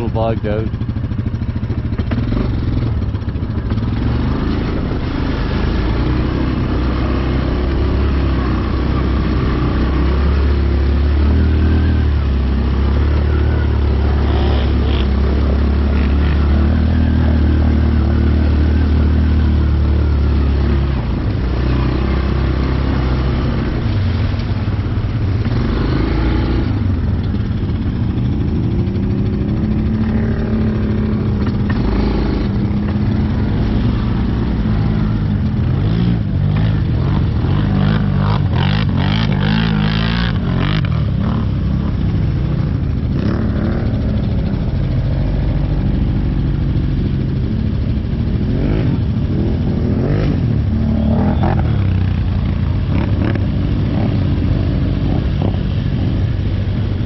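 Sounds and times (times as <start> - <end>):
atv churning through mud: 0.0 - 57.0
atv engines revving: 0.0 - 57.0.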